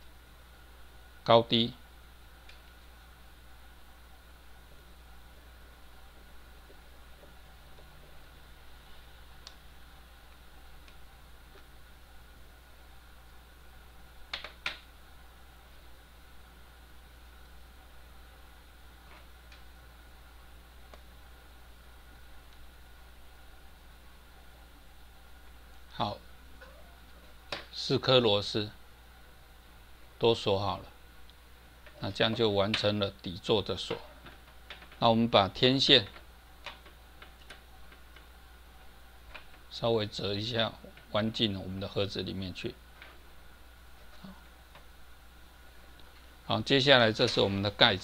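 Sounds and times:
low steady hum: 0.0s - 48.0s.

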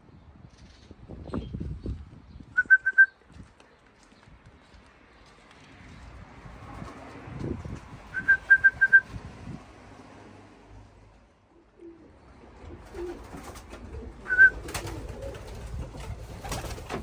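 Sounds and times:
person whistling short notes: 2.6s - 3.2s, 8.2s - 9.1s.

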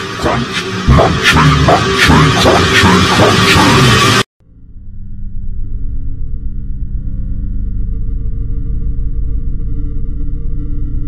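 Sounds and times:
low electronic drone: 0.0s - 11.0s.

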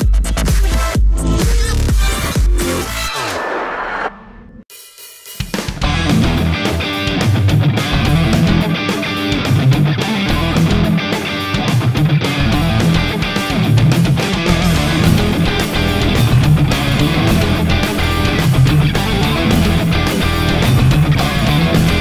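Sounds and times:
drum kit: 0.0s - 3.7s, 4.7s - 22.0s
electric guitar: 5.8s - 22.0s.

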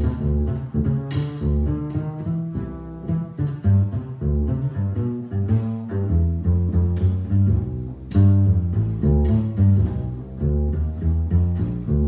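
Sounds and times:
plucked double bass notes: 0.0s - 12.0s.

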